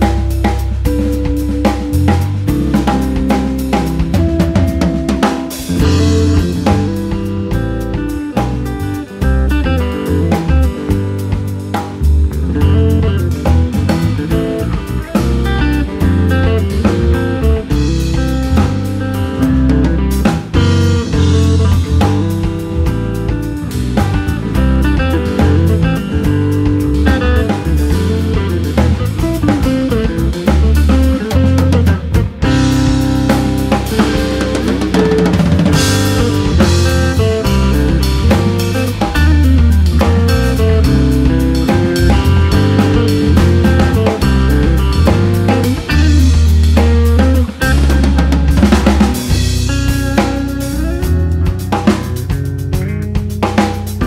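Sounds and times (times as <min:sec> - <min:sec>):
bass line: 0:00.0 - 0:54.0
drum groove: 0:00.0 - 0:54.0
guitar: 0:00.0 - 0:54.0.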